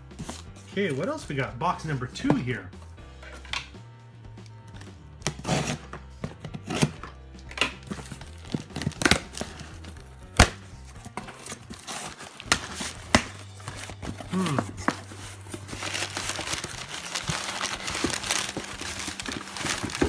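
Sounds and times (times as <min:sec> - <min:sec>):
tape ripped off cardboard box: 0:05.2 - 0:05.9, 0:08.7 - 0:09.6.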